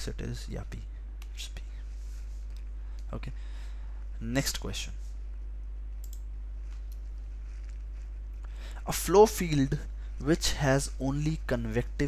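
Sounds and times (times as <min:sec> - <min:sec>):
low electrical hum: 0:00.0 - 0:12.0
soft breath: 0:00.9 - 0:04.2, 0:07.4 - 0:08.9
faint clicks: 0:06.0 - 0:07.1.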